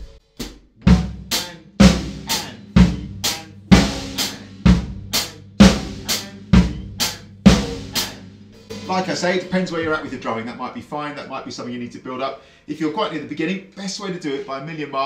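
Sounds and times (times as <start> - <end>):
snare drum: 0.0 - 9.3
bass drum: 0.0 - 10.2.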